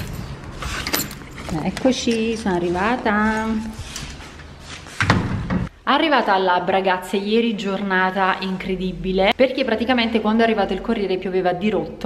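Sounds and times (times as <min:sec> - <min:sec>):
door slamming shut: 0:05.0 - 0:05.7.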